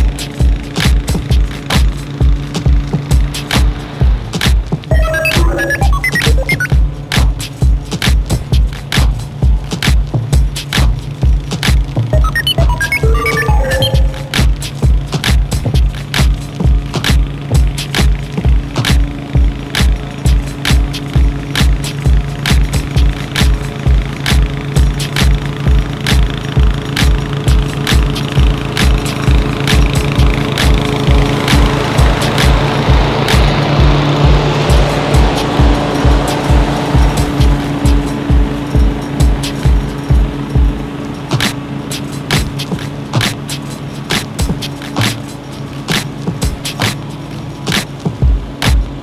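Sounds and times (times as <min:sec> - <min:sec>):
lawn mower running: 0:00.0 - 0:49.0
music with thumping beat: 0:00.0 - 0:49.0.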